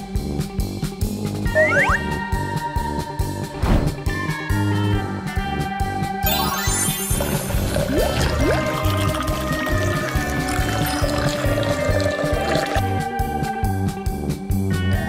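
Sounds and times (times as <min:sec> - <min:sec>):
liquid pouring into a glass: 0:06.4 - 0:13.0.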